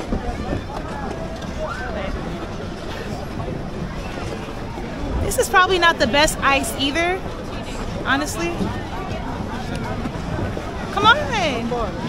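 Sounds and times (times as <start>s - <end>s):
low rumble of city noise: 0.0s - 12.0s
people's voices outdoors: 0.0s - 12.0s.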